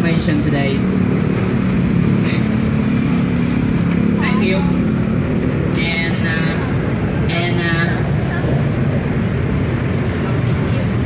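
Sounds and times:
engine rumbling with hum: 0:00.0 - 0:11.0.

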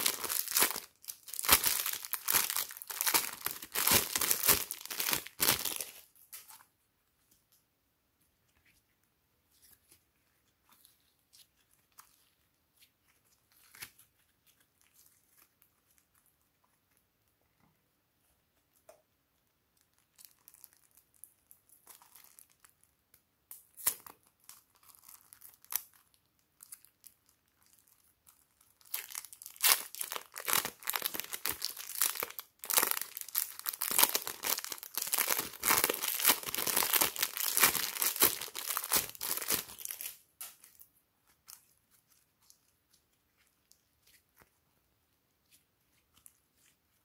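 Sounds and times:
plastic piping bag crinkling: 0:00.0 - 0:07.6, 0:09.5 - 0:16.8, 0:19.8 - 0:47.0.

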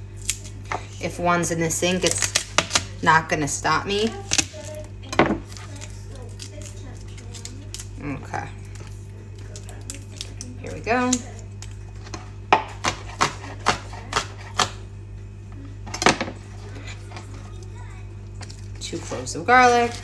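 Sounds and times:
knife chopping on plastic board: 0:12.5 - 0:14.8.

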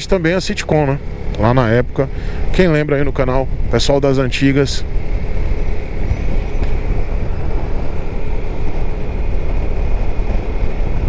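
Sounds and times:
road noise: 0:00.0 - 0:11.0
scooter engine drone: 0:00.0 - 0:11.0
wind rush over microphone: 0:04.8 - 0:11.0.

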